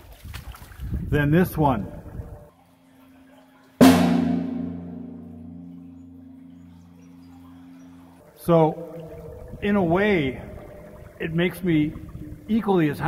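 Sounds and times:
sharp bang in culvert: 0:03.8 - 0:07.0
low reverberant ringing: 0:03.8 - 0:09.5.

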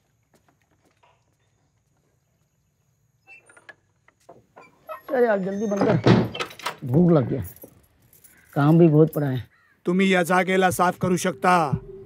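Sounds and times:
keys jangling: 0:06.4 - 0:08.8.

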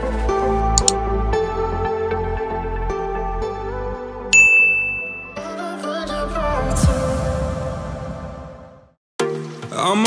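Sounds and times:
soft background music: 0:00.0 - 0:06.9, 0:09.2 - 0:10.0
notification ding chime: 0:04.3 - 0:05.6.

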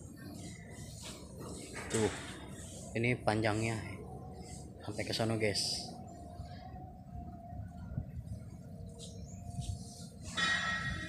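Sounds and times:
bright ringing bell-like tones: 0:10.3 - 0:11.0.

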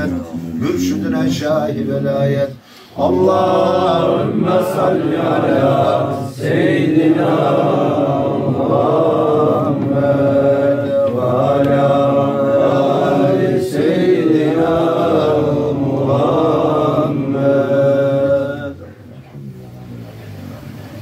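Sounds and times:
men chanting: 0:00.8 - 0:18.9.

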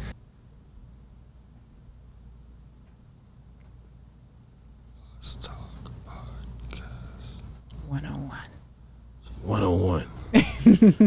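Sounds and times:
steady low hum: 0:00.0 - 0:11.0
hushed whispered speech: 0:05.0 - 0:08.6.

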